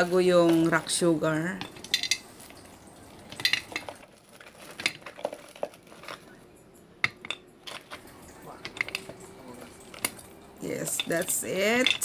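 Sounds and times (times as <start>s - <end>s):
rock sugar clinking into glass jar: 0.6s - 6.4s, 9.8s - 12.0s.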